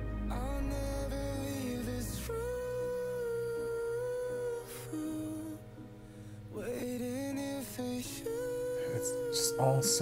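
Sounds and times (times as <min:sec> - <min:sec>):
quiet musical accompaniment: 0:00.0 - 0:10.0
man singing long notes: 0:06.6 - 0:10.0.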